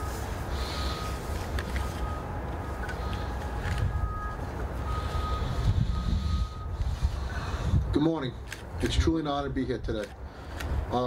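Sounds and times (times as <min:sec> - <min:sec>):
wind rumbling on microphone: 0:05.1 - 0:08.0.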